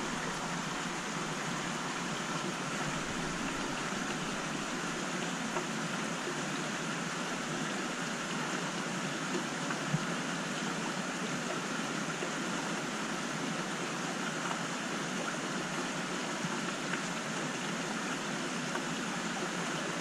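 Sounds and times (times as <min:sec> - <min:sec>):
water rushing through filtration: 0:00.0 - 0:20.0.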